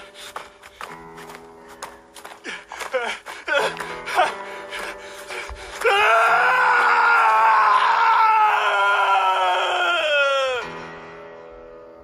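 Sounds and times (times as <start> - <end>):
background music: 0.0 - 12.0
person screaming: 2.9 - 4.4, 5.8 - 10.7.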